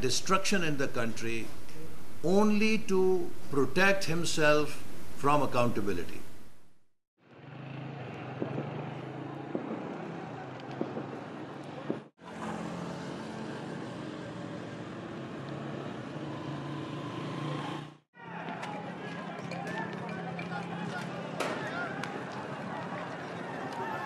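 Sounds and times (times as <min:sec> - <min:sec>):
steady low street hum: 0:00.0 - 0:24.0.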